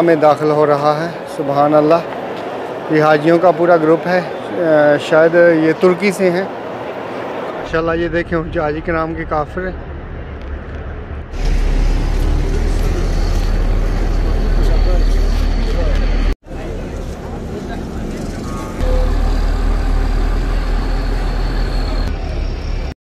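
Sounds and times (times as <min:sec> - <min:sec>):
crowd voices: 0:00.0 - 0:22.9
passing vehicles: 0:00.0 - 0:23.0
heavy low rumble: 0:07.6 - 0:22.9.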